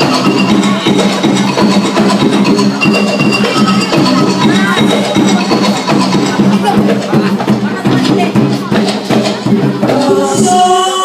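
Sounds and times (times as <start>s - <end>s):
fast drum beat: 0.0s - 11.0s.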